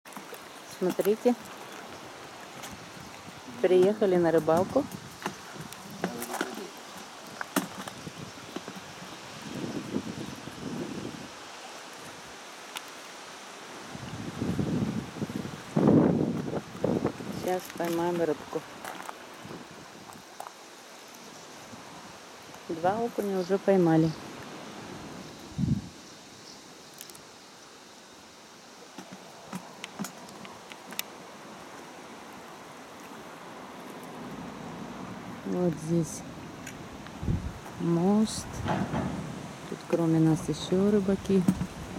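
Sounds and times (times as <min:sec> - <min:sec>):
outdoor background hiss: 0:00.0 - 0:41.9
wind buffeting microphone: 0:00.8 - 0:11.4, 0:13.8 - 0:20.3, 0:24.9 - 0:26.0, 0:34.8 - 0:41.9.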